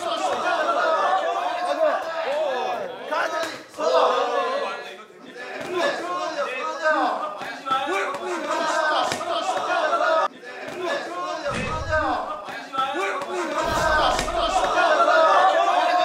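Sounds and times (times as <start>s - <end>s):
men shouting: 11.2s - 16.0s
deep thumps: 11.5s - 12.4s
punches smacking: 11.5s - 12.6s, 13.6s - 14.8s.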